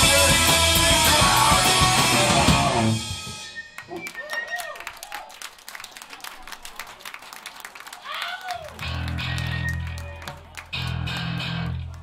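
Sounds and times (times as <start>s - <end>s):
crowd clapping: 3.6s - 12.0s.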